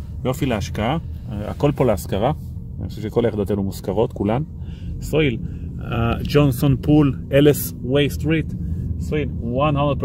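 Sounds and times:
car rumble from inside cabin: 0.0s - 10.0s
man talking: 0.2s - 10.0s.

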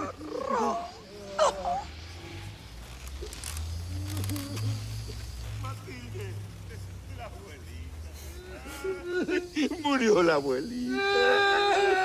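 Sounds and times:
person sobbing wail: 8.4s - 9.8s, 10.9s - 12.0s.

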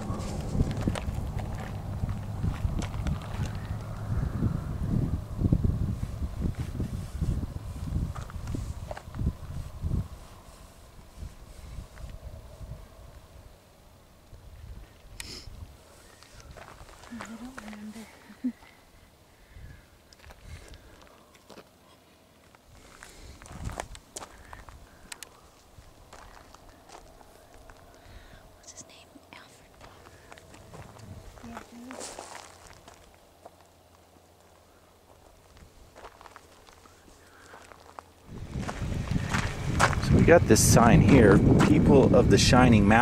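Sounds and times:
footsteps crunching on gravel: 0.0s - 4.0s, 16.2s - 18.0s, 22.4s - 28.0s, 29.7s - 34.2s, 35.1s - 42.0s
low rumble: 0.0s - 13.5s, 29.7s - 33.2s, 38.2s - 43.0s.

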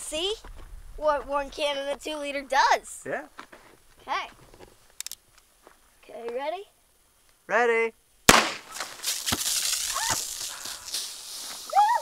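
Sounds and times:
girl yelping: 9.8s - 10.5s, 11.7s - 12.0s
girl shrieking: 9.8s - 10.8s, 11.7s - 12.0s.

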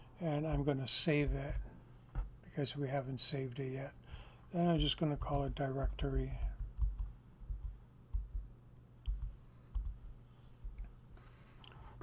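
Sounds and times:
low electrical hum: 0.0s - 12.0s
soft low thumps: 0.5s - 2.4s, 4.8s - 8.5s
keyboard and mouse clicks: 6.4s - 10.0s.

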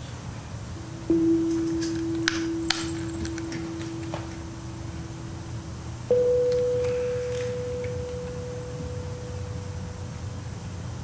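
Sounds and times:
steady low hum: 0.0s - 11.0s
electric string note plucked: 0.8s - 10.3s.

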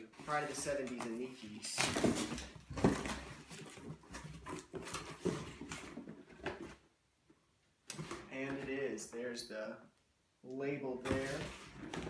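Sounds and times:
cardboard scraping and rustling: 0.1s - 6.8s, 11.0s - 12.0s.

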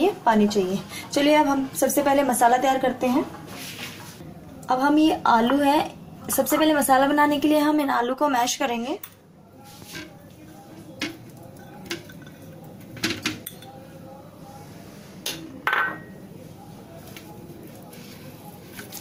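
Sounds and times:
crockery knocking and clinking: 15.3s - 16.2s.

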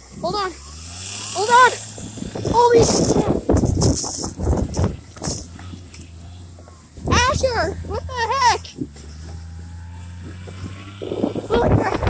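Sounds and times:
sled scraping and rumbling over snow: 0.0s - 12.0s.

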